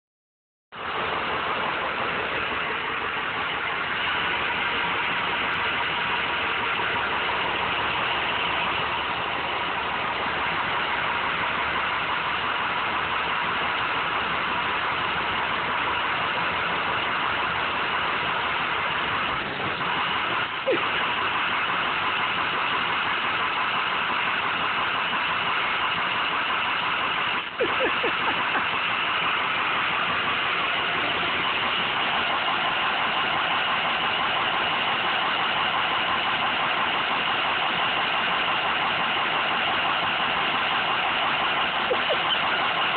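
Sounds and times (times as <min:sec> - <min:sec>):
bus engine idling: 0:00.7 - 0:42.9.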